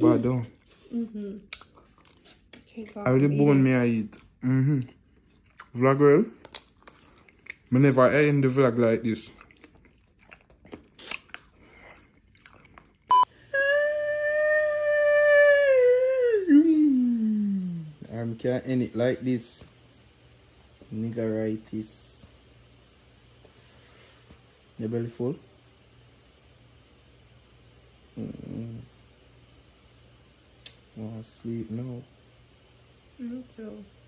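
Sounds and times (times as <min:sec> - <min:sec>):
long held vocal sound: 0:13.3 - 0:18.0
man humming: 0:13.3 - 0:18.0, 0:28.1 - 0:28.9.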